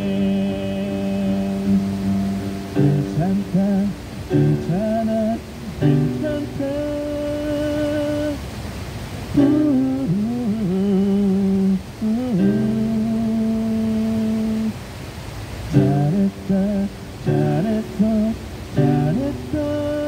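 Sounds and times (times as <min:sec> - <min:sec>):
electronic keyboard accompaniment: 0:00.0 - 0:07.9, 0:17.2 - 0:20.0
man singing into a microphone: 0:00.0 - 0:08.4, 0:09.3 - 0:14.8, 0:15.7 - 0:20.0.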